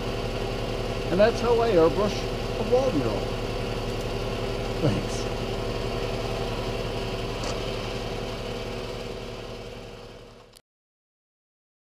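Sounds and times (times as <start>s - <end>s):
motor humming: 0.0s - 10.6s.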